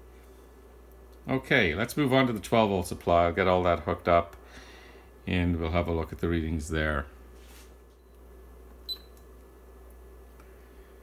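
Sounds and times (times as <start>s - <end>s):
low equipment hum: 0.0s - 11.0s.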